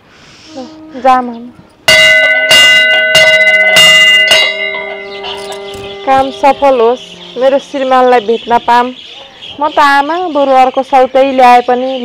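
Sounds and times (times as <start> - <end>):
metal bell struck ringing: 1.9 - 8.9.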